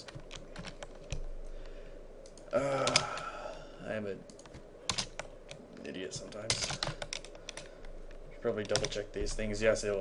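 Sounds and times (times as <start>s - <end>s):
computer keyboard typing: 0.0s - 1.3s, 2.2s - 3.2s, 4.3s - 7.7s, 8.5s - 9.1s.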